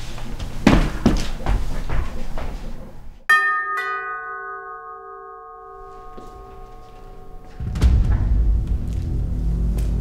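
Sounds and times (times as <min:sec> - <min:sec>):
two-note doorbell chime: 0:03.3 - 0:07.6.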